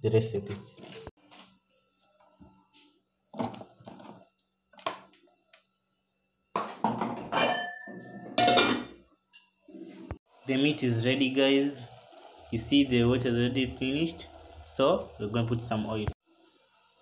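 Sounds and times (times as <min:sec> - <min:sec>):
metal pot and lid clattering: 0:06.6 - 0:09.0
metallic ring: 0:07.3 - 0:08.8.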